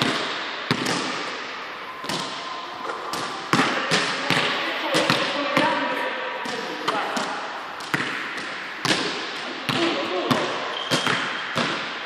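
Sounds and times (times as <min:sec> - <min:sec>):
basketball bouncing on court floor: 0:00.0 - 0:01.2, 0:03.1 - 0:05.7, 0:06.4 - 0:12.0
echo in large hall: 0:00.0 - 0:12.0.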